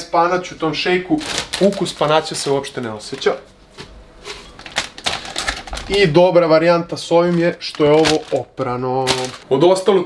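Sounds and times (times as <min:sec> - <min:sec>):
plastic bag crinkling: 0:01.1 - 0:03.4, 0:04.5 - 0:06.2, 0:06.9 - 0:09.9.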